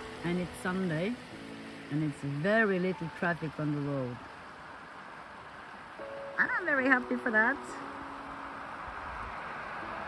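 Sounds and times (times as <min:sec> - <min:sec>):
tyre noise on wet road: 0:00.0 - 0:10.0.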